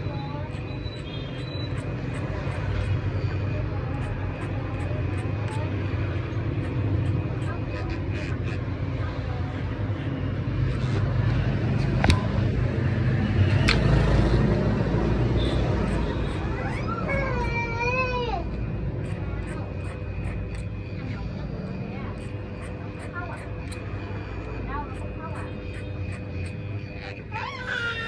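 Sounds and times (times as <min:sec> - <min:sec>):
electric hair clippers buzzing: 0:15.1 - 0:17.8, 0:18.4 - 0:20.8, 0:22.1 - 0:27.3.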